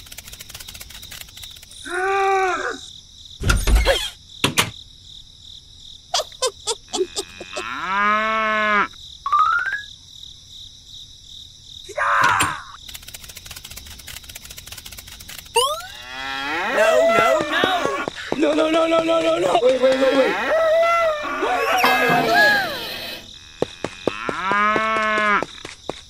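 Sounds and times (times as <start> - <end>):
scattered clicks: 0.0 - 1.8, 12.8 - 15.8
chirping insects: 0.0 - 26.0.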